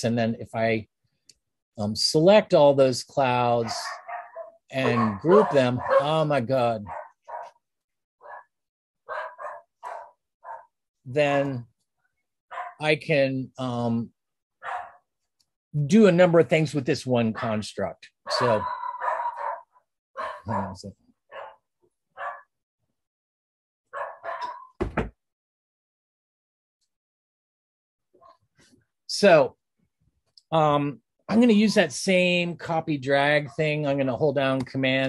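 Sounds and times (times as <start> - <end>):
small dog barking: 3.6 - 6.1, 6.9 - 7.5, 9.1 - 10.7, 12.5 - 12.8, 14.6 - 15.0, 18.3 - 19.6, 20.2 - 21.6, 22.2 - 22.5, 24.0 - 24.7
loud thump: 24.8 - 25.2.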